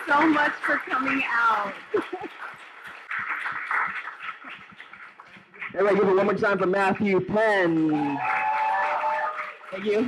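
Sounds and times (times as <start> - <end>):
small audience applauding: 0.0 - 10.0.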